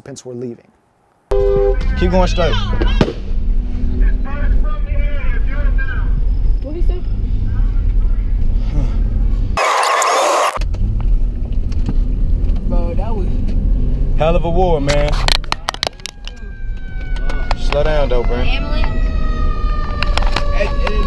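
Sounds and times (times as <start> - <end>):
engine and road rumble: 0.8 - 9.7, 10.4 - 21.0.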